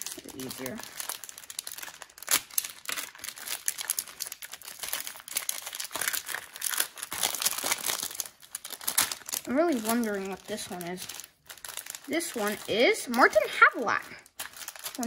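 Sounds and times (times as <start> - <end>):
plastic bag rustling: 0.0 - 15.0
plastic wrapper crinkling: 0.0 - 15.0.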